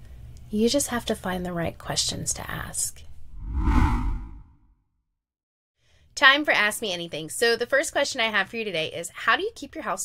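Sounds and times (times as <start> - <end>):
whoosh sound effect: 3.4 - 4.5.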